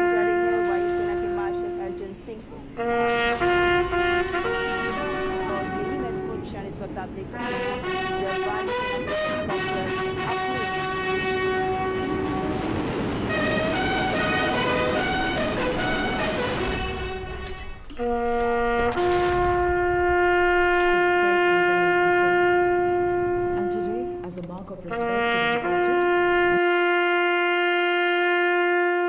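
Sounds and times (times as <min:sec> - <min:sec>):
bugle call: 0:00.0 - 0:24.4, 0:25.0 - 0:29.0.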